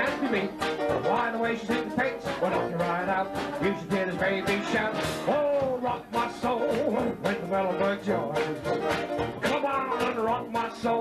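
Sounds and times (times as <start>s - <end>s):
man singing: 0.0s - 11.0s
traditional jazz band playing: 0.0s - 11.0s.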